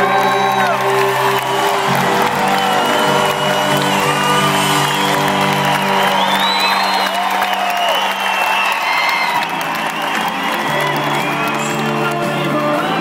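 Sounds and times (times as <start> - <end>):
live country band playing: 0.0 - 8.3, 9.1 - 13.0
crowd cheering and whooping: 0.0 - 13.0.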